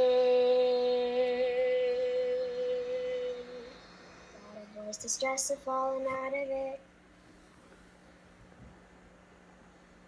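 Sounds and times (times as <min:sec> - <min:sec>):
person singing a long note: 0:00.0 - 0:06.8.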